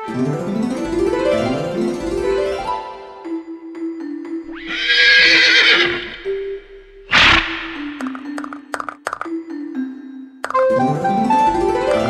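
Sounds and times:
light background music: 0.0 - 12.0
horse whinny: 4.5 - 7.8.

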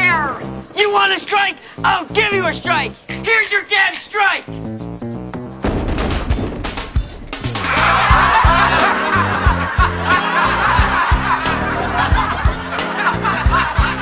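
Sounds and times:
background music with bass: 0.0 - 0.8, 1.8 - 3.3, 4.5 - 14.0
bowling pins clattering: 5.6 - 8.7
crowd cheering and laughing: 7.4 - 14.0.

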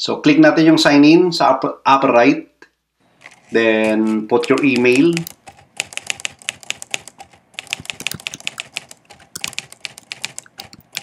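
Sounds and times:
typing on laptop keyboard: 4.3 - 11.0.

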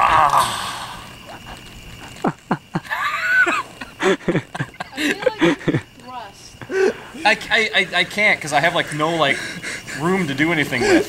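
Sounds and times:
man grunting and crying out: 0.0 - 1.0.

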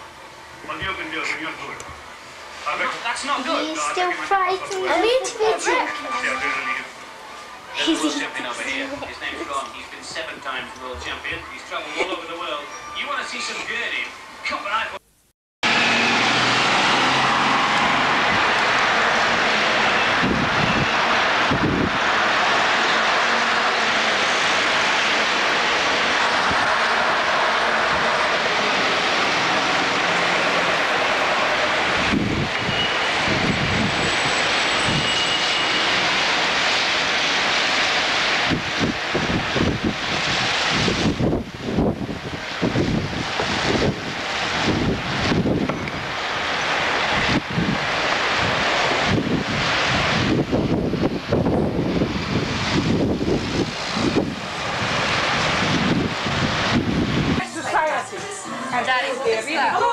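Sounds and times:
wind buffeting microphone: 17.6 - 22.3, 31.7 - 35.1, 38.3 - 58.1.

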